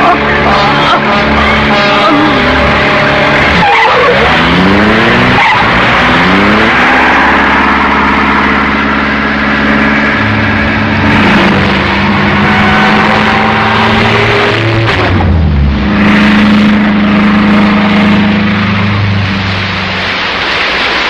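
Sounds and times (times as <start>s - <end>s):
car engine revving: 0.0s - 21.0s
tyres skidding: 0.0s - 21.0s.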